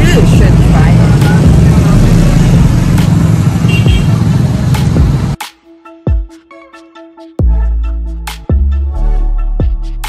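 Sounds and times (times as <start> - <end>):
motor vehicle running nearby: 0.0 - 5.4
road traffic rumble: 0.0 - 5.4.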